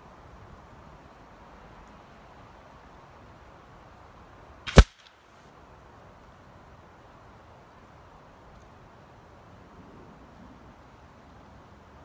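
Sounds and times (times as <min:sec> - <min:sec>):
pellet striking paper target: 0:04.7 - 0:05.0
faint snap: 0:04.7 - 0:05.2.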